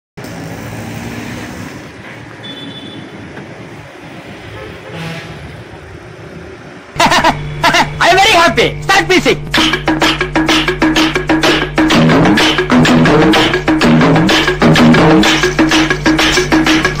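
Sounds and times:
road traffic hum: 0:00.2 - 0:17.0
short high horn toot: 0:04.5 - 0:05.5
music: 0:07.0 - 0:17.0.

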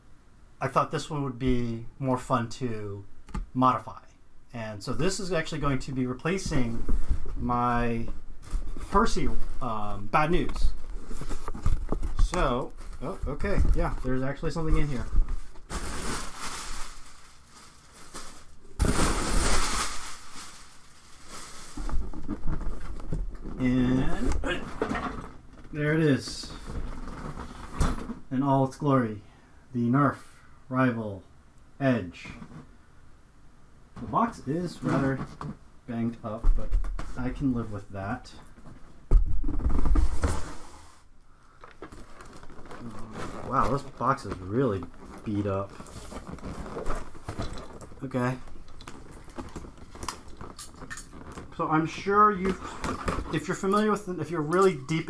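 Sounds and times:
plastic packing wrap crinkling: 0:08.4 - 0:24.2, 0:41.6 - 0:55.0
cardboard rustling: 0:08.4 - 0:25.4, 0:41.6 - 0:55.0.

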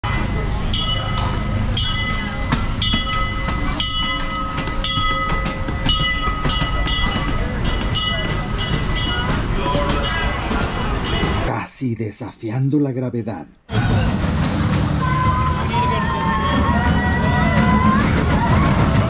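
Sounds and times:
bell ringing: 0:00.0 - 0:11.5
steam train rumbling: 0:00.0 - 0:11.6, 0:13.7 - 0:19.0.

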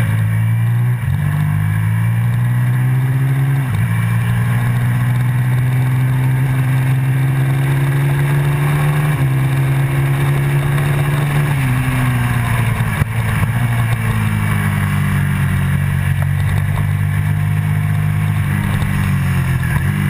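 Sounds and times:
motorcycle engine accelerating: 0:00.0 - 0:20.0.

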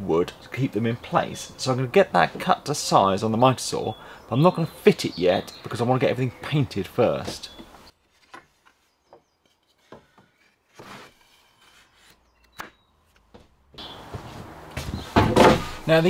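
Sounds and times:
man talking: 0:00.0 - 0:07.6.

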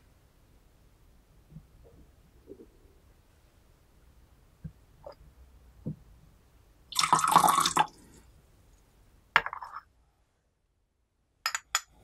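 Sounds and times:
liquid pouring into vessel: 0:06.9 - 0:08.1.

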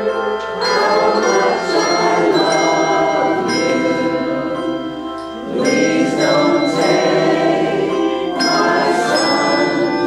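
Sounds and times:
handbell choir ringing: 0:00.0 - 0:10.0.

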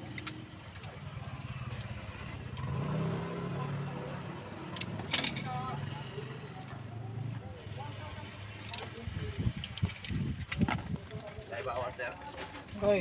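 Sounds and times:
faint background voices: 0:00.0 - 0:13.0
vehicle engine rumble: 0:00.0 - 0:13.0.

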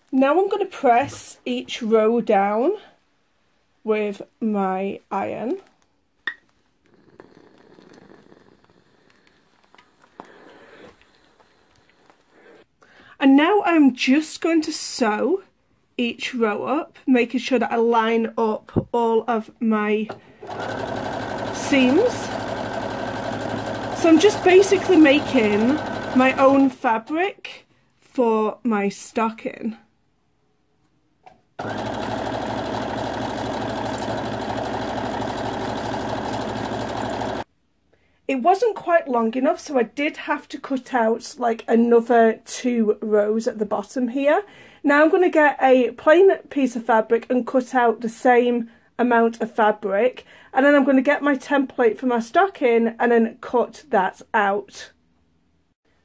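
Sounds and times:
sewing machine stitching: 0:20.4 - 0:26.8, 0:31.6 - 0:37.5.

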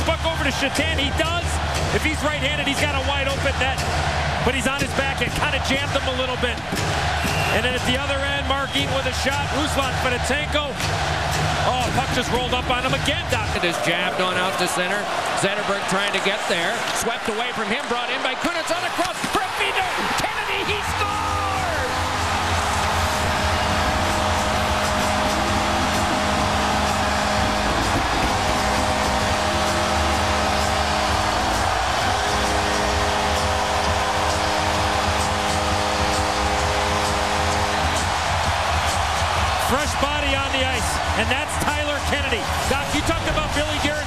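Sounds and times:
thumping music: 0:00.0 - 0:14.8, 0:18.6 - 0:44.0
crowd cheering: 0:00.0 - 0:44.0.

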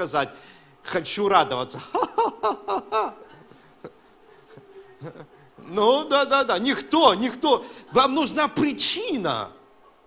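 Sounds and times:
man speaking through microphone: 0:00.0 - 0:01.9, 0:05.6 - 0:09.6
faint steady hum: 0:00.0 - 0:10.0.

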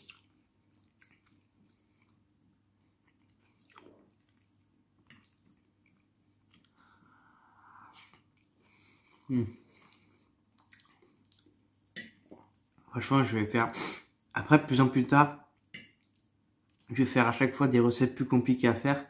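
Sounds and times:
soft chewing: 0:00.0 - 0:12.9, 0:15.5 - 0:17.0.

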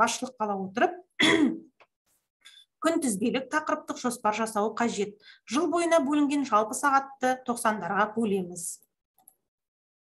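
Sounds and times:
woman clearing throat: 0:01.2 - 0:01.7.

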